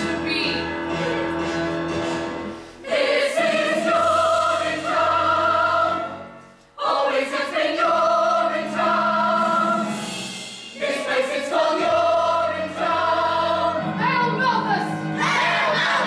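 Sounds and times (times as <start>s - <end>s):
choir singing held chords: 2.5s - 14.0s, 15.1s - 16.0s.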